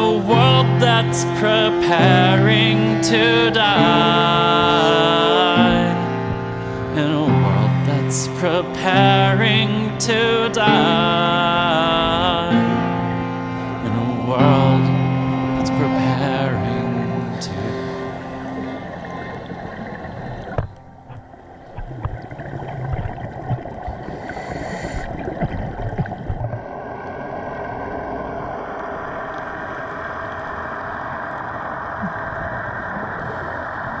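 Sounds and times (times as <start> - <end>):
music notes: 0.0 - 22.3
regulator bubbles gurgling underwater: 17.6 - 34.0
underwater hiss: 24.0 - 25.3.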